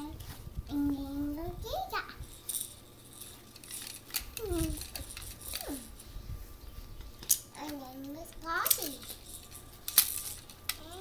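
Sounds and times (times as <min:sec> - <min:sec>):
plastic toy rings rattling: 0:02.2 - 0:06.1, 0:07.2 - 0:11.0.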